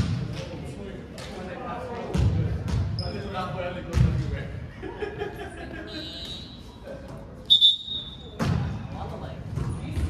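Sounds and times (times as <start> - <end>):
echoing gym ambience: 2.4 - 10.0.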